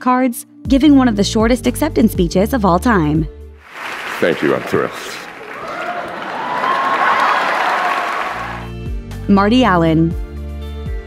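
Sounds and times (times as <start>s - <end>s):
music playing: 0.7s - 5.4s, 7.0s - 11.0s
audience applauding: 3.6s - 8.7s.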